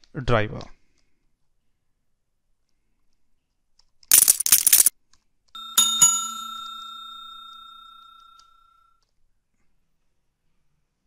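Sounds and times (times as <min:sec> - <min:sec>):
bell ding: 0:05.6 - 0:08.7.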